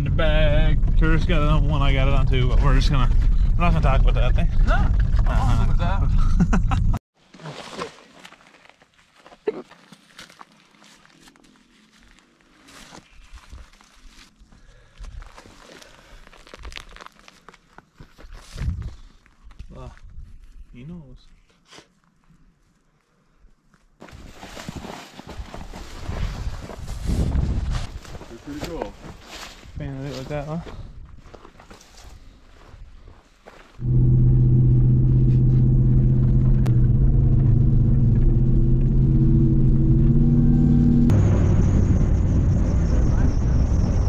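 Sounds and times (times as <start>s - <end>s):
rustling in brush: 24.1s - 30.3s.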